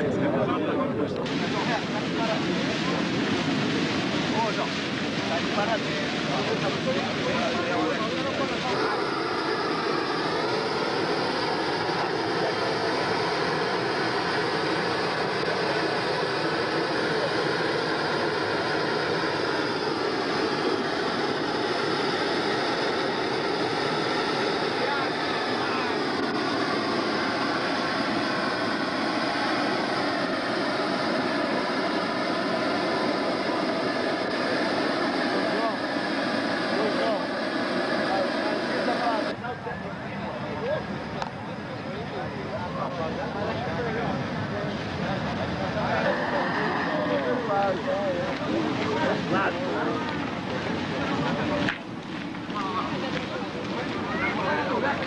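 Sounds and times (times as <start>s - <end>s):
faint voices: 0.0s - 55.0s
flaming torch burning: 1.1s - 55.0s.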